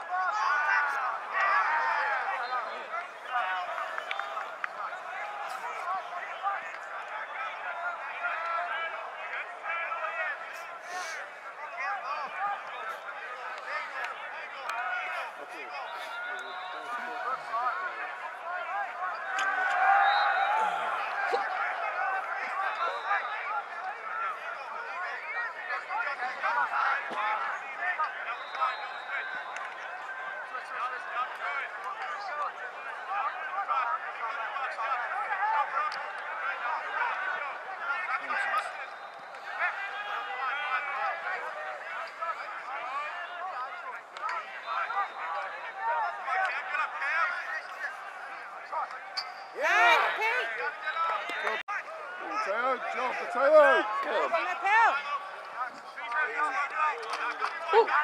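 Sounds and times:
indistinct chatter of many voices: 0.0 - 58.0
loud shouts: 0.0 - 58.0.

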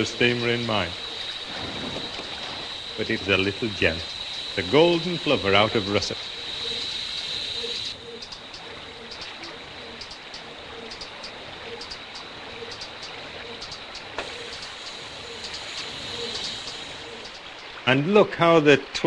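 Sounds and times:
flowing river water: 0.0 - 19.0
faint high bird chirps: 6.1 - 17.7.

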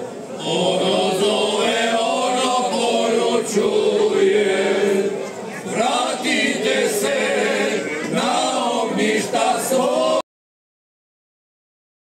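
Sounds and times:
men singing in harmony: 0.4 - 10.2.

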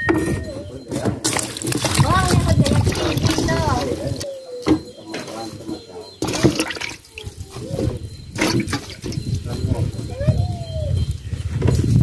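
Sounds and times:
people talking: 0.0 - 11.0
water splashing in a basin: 1.2 - 4.2, 6.2 - 7.7, 8.4 - 9.3.

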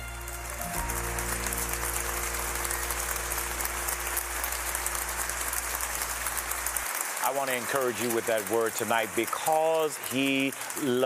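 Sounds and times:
sustained final chord: 0.0 - 6.8
audience applause: 0.0 - 11.0.

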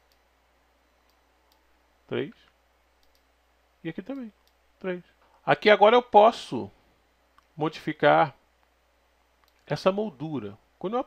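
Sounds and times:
keyboard and mouse clicks: 3.0 - 3.3.

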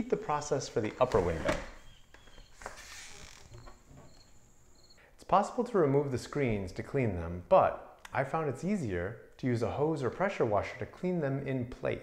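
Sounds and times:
window sash sliding and rubbing: 2.4 - 4.3
high insect trill: 2.9 - 5.0.

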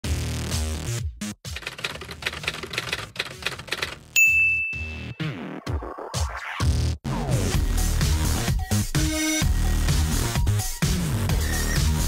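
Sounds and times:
typewriter key clacks: 1.5 - 4.0
typewriter bell ding: 4.2 - 5.2.

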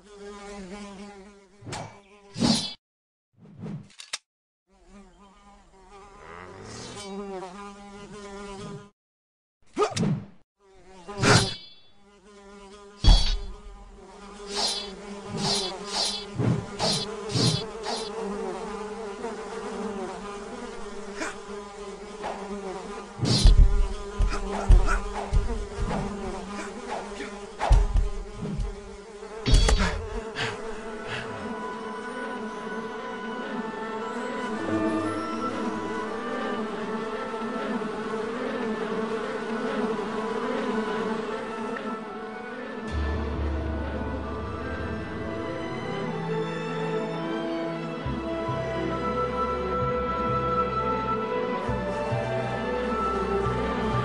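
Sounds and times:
insect buzzing: 0.0 - 2.8, 4.7 - 9.0, 10.6 - 42.9
sword swishes and strikes: 11.2 - 11.8, 13.0 - 13.6, 14.5 - 18.1
heavy thuds on wooden floor: 23.3 - 26.4, 27.7 - 28.9.

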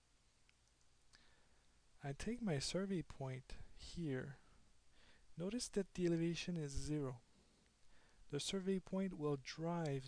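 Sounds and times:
computer mouse clicks: 0.4 - 0.9.

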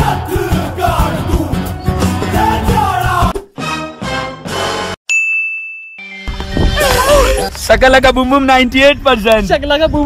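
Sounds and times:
bright chime ding: 5.1 - 6.3.

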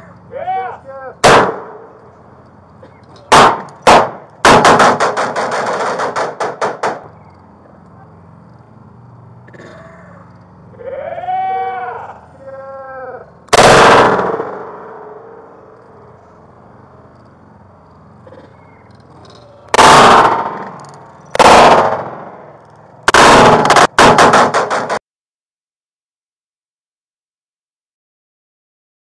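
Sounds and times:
slowed drawn-out shout: 0.0 - 1.2, 10.0 - 13.4
slowed gunshots: 1.2 - 2.0, 3.3 - 7.1, 13.5 - 16.2, 19.7 - 25.0.

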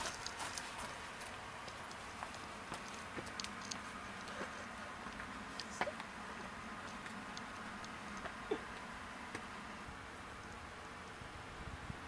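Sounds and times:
footsteps on stone paving: 0.0 - 9.5.

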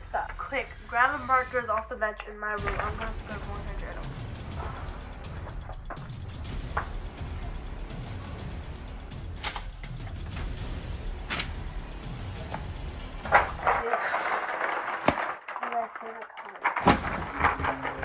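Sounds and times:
quiet background music: 0.0 - 14.3, 14.9 - 18.0.

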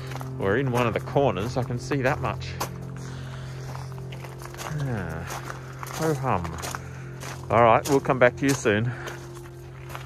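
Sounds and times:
background music: 0.0 - 10.0
footsteps on gravel: 0.0 - 10.0
person humming: 4.6 - 5.4.

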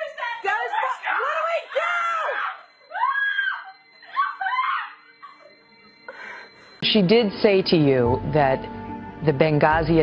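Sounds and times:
people screaming in shock: 0.7 - 5.0.

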